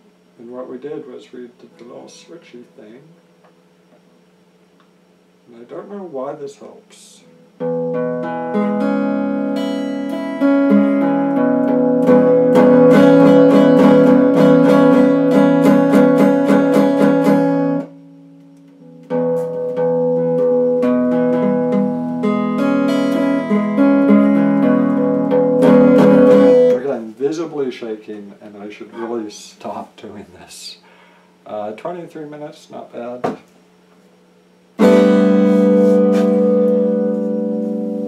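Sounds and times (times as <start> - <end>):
electric guitar playing: 7.3 - 27.2, 34.8 - 38.0.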